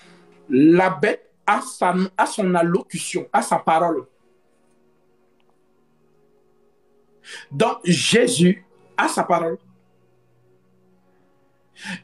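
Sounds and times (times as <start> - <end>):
faint steady background tone: 0.0 - 12.0
man speaking: 0.5 - 4.1, 7.3 - 9.6.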